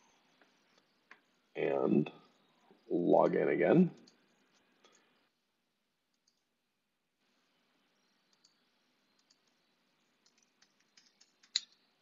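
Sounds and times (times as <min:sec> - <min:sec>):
keyboard and mouse clicks: 0:06.1 - 0:06.5, 0:08.3 - 0:08.6, 0:09.2 - 0:09.6, 0:10.2 - 0:11.8.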